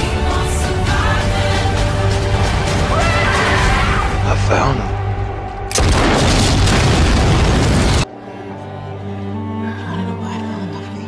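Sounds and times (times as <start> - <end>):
music: 0.0 - 11.0
loud explosion: 5.7 - 8.1.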